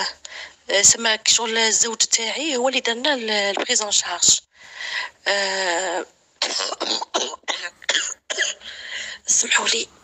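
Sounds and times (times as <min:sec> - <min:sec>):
woman coughing: 0:06.4 - 0:08.7.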